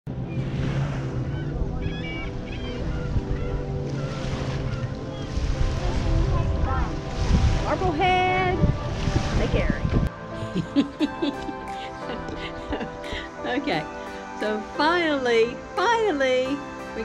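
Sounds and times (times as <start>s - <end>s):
wind buffeting microphone: 0.2s - 10.1s.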